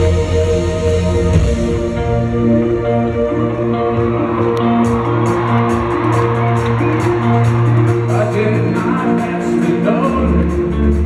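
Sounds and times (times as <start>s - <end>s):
low bass line: 0.0s - 11.0s
sustained synthesizer chords: 0.0s - 11.0s.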